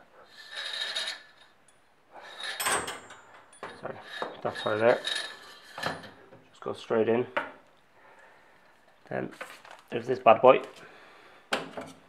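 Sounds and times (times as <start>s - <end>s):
spring sliding scrape in tube: 0.2s - 1.5s, 3.9s - 6.0s
metal clink and rattle: 2.4s - 6.2s.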